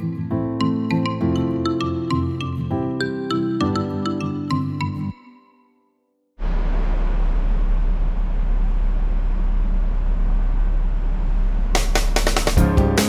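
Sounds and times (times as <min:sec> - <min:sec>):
music: 0:00.0 - 0:06.4, 0:11.8 - 0:13.0
bus rumble and road noise: 0:06.4 - 0:12.2.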